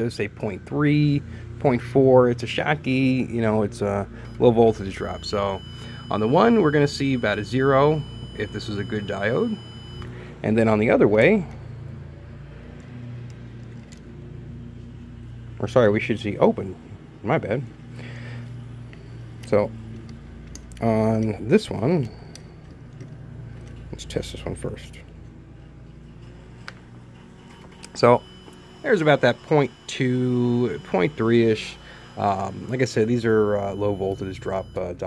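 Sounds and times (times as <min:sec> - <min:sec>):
low electrical hum: 0:00.0 - 0:35.0.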